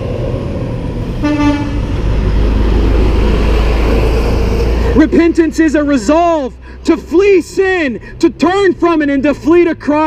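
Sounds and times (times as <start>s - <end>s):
motor vehicle rumble: 0.0s - 10.0s
vehicle horn toot: 1.2s - 1.9s.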